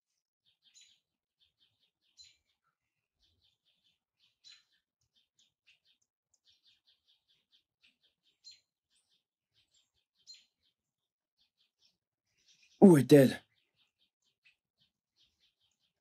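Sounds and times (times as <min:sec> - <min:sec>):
faint birds twittering: 0:00.1 - 0:16.0.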